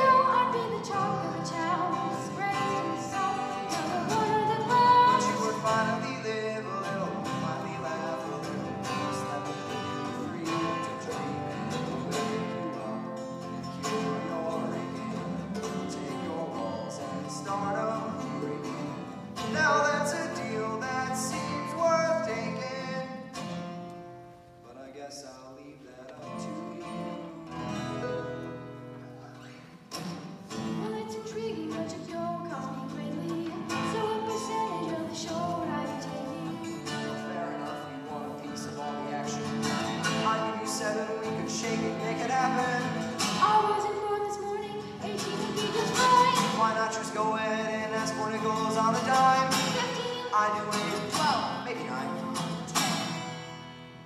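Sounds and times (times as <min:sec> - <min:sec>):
person singing live: 0:00.0 - 0:23.4, 0:25.6 - 0:53.6
strummed acoustic guitars: 0:00.0 - 0:54.0.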